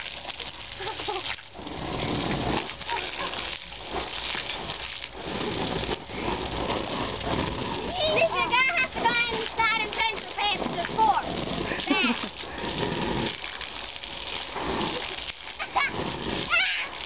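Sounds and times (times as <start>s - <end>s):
hose water spraying on trampoline: 0.0s - 17.0s
children's voices: 7.8s - 11.4s, 15.6s - 17.0s.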